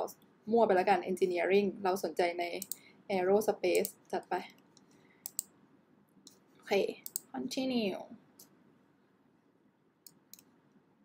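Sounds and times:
person speaking: 6.6s - 8.2s.

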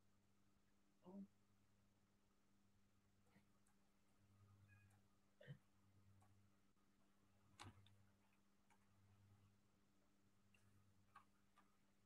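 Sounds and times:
faint low hum: 0.0s - 12.0s
faint clicks: 7.5s - 9.0s.

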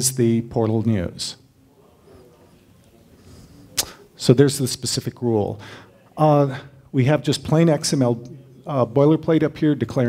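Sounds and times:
breath into microphone: 5.6s - 6.0s.

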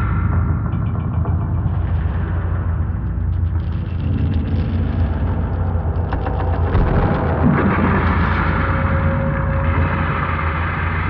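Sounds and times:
low rumbling drone music: 0.0s - 11.0s.

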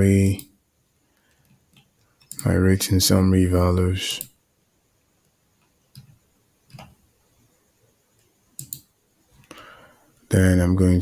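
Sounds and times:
computer mouse clicks: 1.2s - 2.5s, 5.2s - 7.0s, 8.2s - 8.9s.

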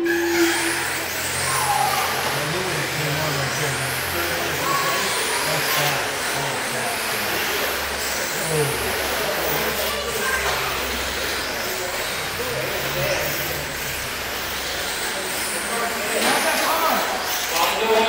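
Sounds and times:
electric motor whines: 0.0s - 18.0s.

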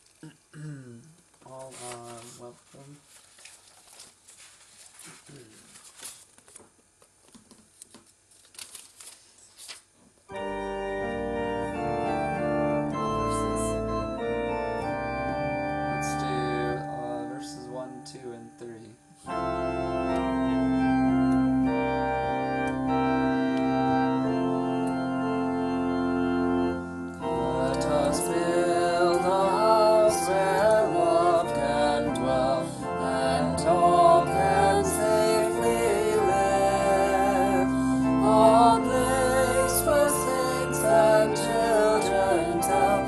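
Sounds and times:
electronic organ playing hymn chords: 10.3s - 43.0s.

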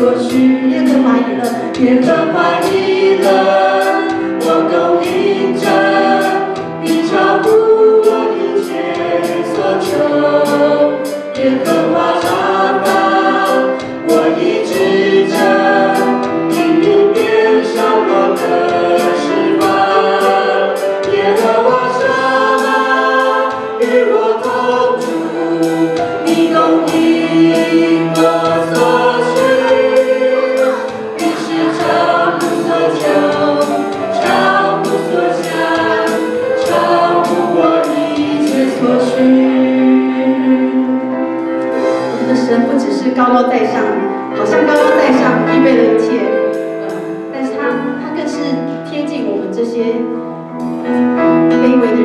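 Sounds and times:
drum kit: 0.0s - 40.7s
voices singing together: 0.0s - 48.0s
hi-hat strikes: 0.2s - 39.3s.

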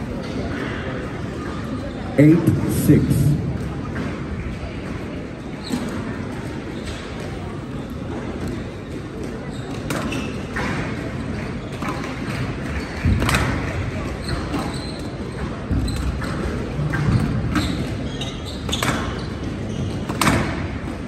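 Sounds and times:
murmur of spectators: 0.0s - 21.0s.

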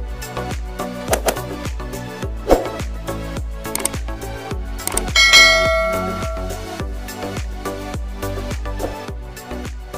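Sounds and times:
background music with steady beat: 0.0s - 9.9s
bright bell chime: 5.2s - 6.8s.

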